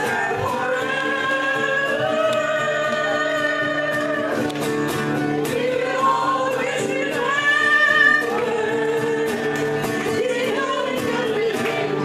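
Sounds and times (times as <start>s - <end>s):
women singing together: 0.0s - 12.0s
hand clapping: 4.0s - 4.9s.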